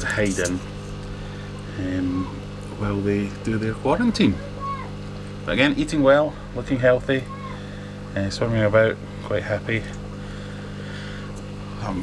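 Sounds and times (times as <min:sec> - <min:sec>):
aquarium air pump humming: 0:00.0 - 0:12.0.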